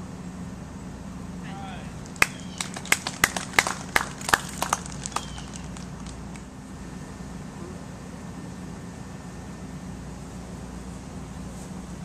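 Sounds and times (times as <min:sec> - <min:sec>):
scattered applause: 0:01.6 - 0:06.5.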